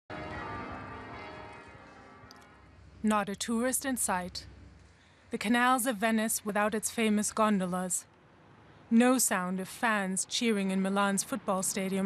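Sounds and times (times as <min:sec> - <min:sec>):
church bells ringing: 0:00.1 - 0:02.9.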